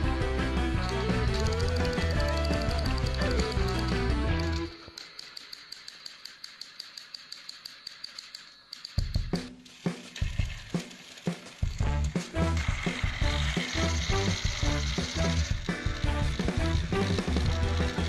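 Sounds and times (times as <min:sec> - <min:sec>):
background music with steady beat: 0:00.0 - 0:04.8, 0:11.3 - 0:18.0
toy train clicking: 0:00.0 - 0:18.0.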